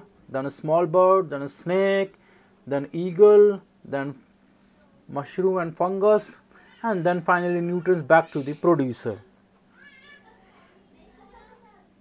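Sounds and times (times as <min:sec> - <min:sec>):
faint high-pitched cry: 0:06.5 - 0:08.9, 0:09.7 - 0:12.0.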